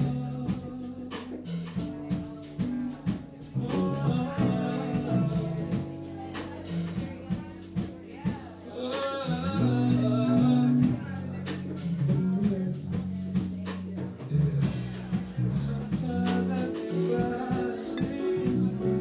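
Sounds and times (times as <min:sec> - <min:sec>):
person singing: 0:00.0 - 0:13.5, 0:15.2 - 0:19.0
drum kit: 0:00.0 - 0:19.0
guitar: 0:00.0 - 0:19.0.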